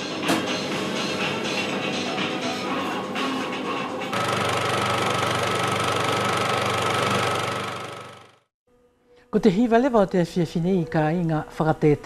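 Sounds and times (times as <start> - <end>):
motor running with low hum: 4.1 - 8.5.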